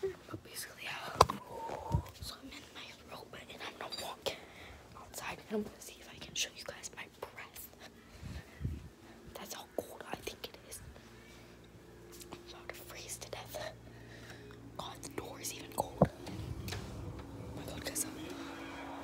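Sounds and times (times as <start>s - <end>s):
steady low hum: 4.2s - 19.0s.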